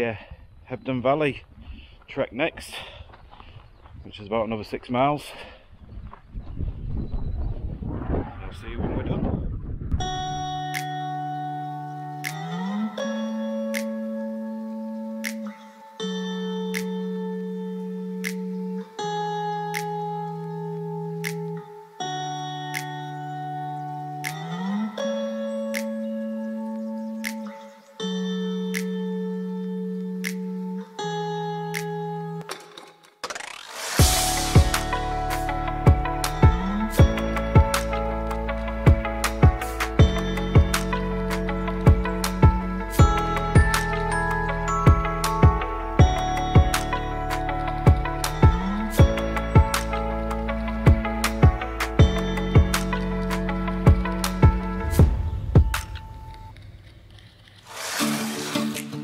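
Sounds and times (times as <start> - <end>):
wind on microphone: 5.7 - 10.6
light regular ticks: 18.2 - 18.5
slow synth chords: 34.0 - 57.1.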